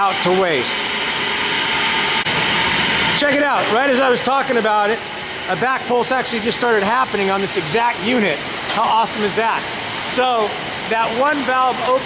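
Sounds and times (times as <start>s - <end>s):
machinery rushing noise: 0.0s - 12.0s.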